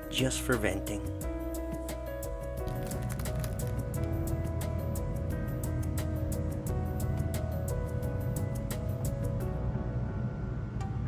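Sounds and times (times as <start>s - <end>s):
music with steady percussive beat: 1.0s - 9.4s.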